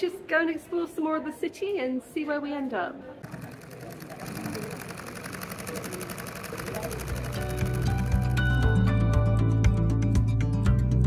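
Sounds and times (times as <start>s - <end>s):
distant voices: 3.2s - 8.4s
fast ticking rhythm: 3.2s - 9.0s
background music: 7.2s - 11.0s.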